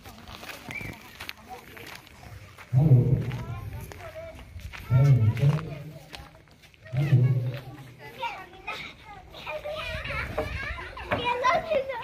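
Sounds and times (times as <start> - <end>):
children chattering and calling out: 0.0 - 12.0
people's voices: 0.0 - 12.0.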